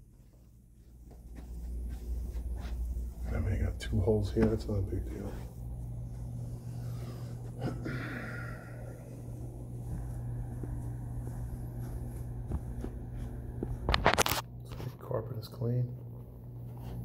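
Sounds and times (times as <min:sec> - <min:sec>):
faint footsteps: 0:00.0 - 0:14.2
low room hum: 0:00.0 - 0:17.0.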